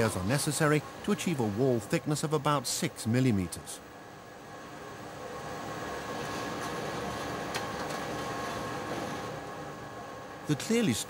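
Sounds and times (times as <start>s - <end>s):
machine running with faint hum: 0.0s - 11.0s.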